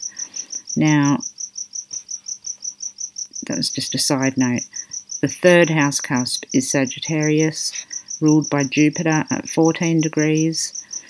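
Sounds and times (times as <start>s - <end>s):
insect chirping: 0.0s - 11.0s.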